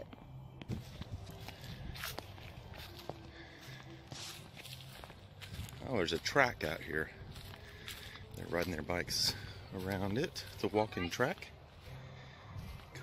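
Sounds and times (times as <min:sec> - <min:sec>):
flip-flop footsteps on grass and leaves: 0:00.1 - 0:13.0.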